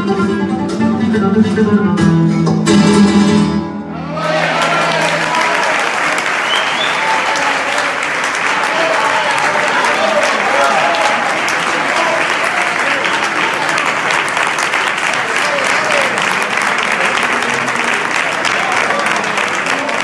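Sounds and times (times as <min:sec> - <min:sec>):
audience clapping: 0:04.2 - 0:20.0.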